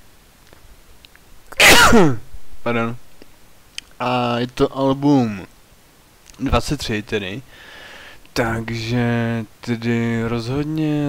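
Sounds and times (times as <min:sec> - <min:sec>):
room hiss: 0:00.0 - 0:11.0
man sneezing: 0:01.5 - 0:02.2.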